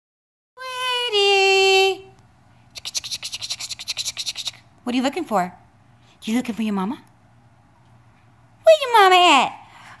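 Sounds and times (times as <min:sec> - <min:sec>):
rapid rhythmic scratching: 0:02.8 - 0:04.6.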